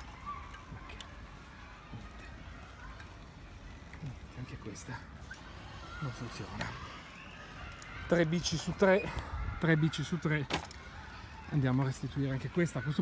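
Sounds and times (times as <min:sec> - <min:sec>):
outdoor street background: 0:00.0 - 0:13.0.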